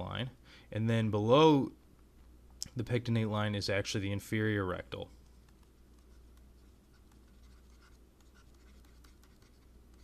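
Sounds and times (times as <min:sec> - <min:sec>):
low steady hum: 0:00.0 - 0:10.0
stylus scratching and tapping: 0:05.1 - 0:10.0.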